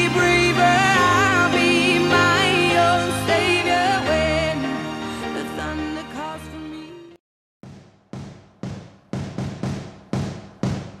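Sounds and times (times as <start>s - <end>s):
background music: 0.0s - 7.2s
drum beat: 7.6s - 11.0s.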